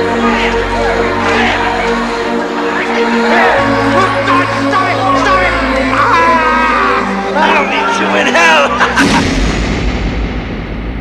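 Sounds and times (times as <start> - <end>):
raised voices: 0.0 - 8.9
loud boom with deep decay: 9.0 - 11.0.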